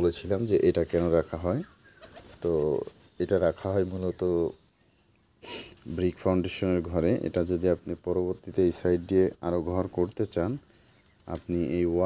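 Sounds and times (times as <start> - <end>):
man speaking: 0.0 - 1.7, 2.4 - 4.6, 5.8 - 10.6, 11.3 - 12.0.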